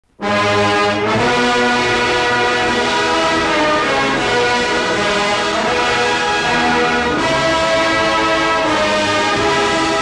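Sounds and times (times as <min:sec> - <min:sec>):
orchestral music with brass: 0:00.1 - 0:10.0.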